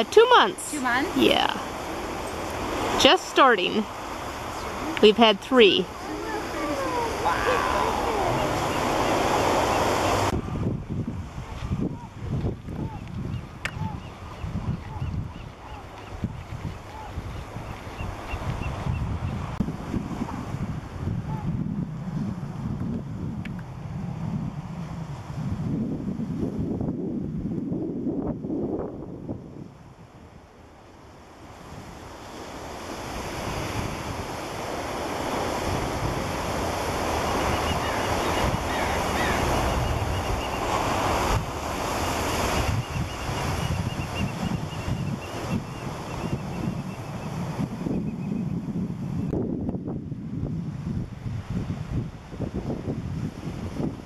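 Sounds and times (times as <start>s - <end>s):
surf washing over sand: 0.0s - 54.0s
wind buffeting microphone: 0.0s - 54.0s.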